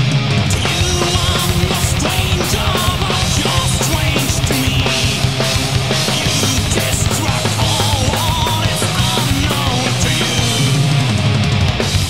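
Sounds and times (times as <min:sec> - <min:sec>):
fast drumming with crashing cymbals: 0:00.0 - 0:12.0
power metal band playing: 0:00.0 - 0:12.0.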